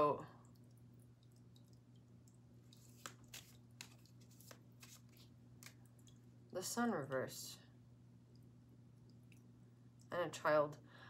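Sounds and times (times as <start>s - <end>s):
cards flicking off a deck: 2.9s - 5.8s.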